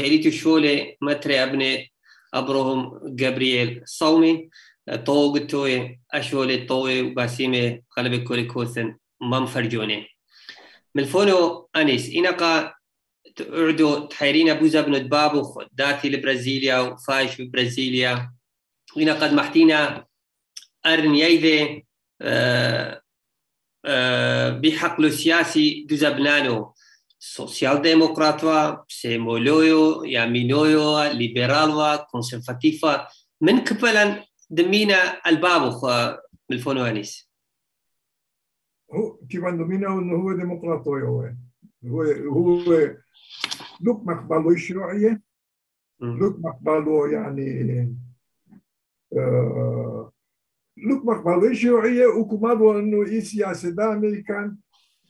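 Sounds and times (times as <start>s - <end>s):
man speaking: 0.0s - 10.2s, 10.9s - 23.1s, 23.8s - 37.3s, 38.9s - 45.3s, 46.0s - 48.2s, 49.1s - 50.2s, 50.8s - 54.6s
man's drawn-out hesitation sound: 38.9s - 45.2s, 46.0s - 48.1s
man saying uhh: 49.1s - 50.1s.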